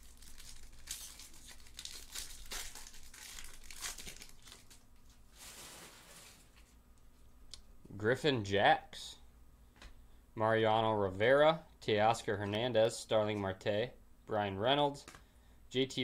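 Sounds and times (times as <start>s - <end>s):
foil wrapper crinkling and tearing: 0.0s - 6.6s.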